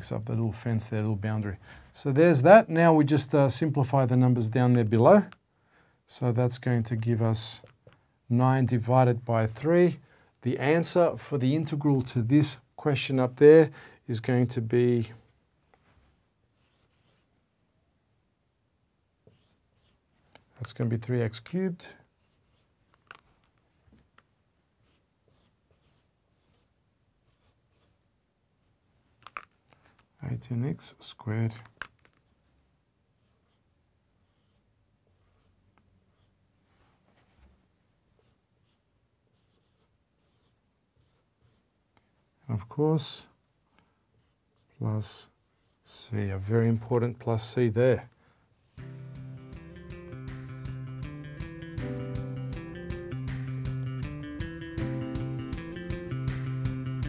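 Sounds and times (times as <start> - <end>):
marker strokes on whiteboard: 16.6 - 17.4, 19.2 - 20.6, 22.1 - 24.1, 24.8 - 28.0, 33.2 - 37.5, 38.1 - 42.1, 48.7 - 53.8.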